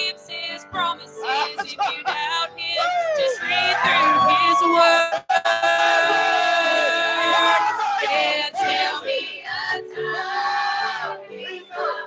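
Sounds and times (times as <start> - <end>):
keyboard accompaniment: 0.0 - 4.8, 6.2 - 12.0
choir singing gospel: 0.0 - 12.0.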